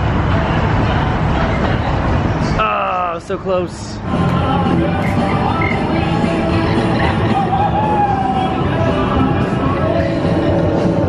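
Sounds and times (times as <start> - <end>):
background music: 4.0 - 11.0.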